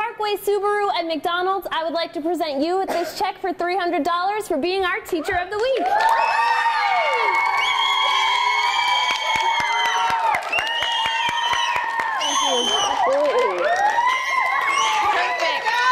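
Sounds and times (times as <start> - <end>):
children cheering and screaming: 5.9 - 15.9
hand clapping: 8.9 - 15.2.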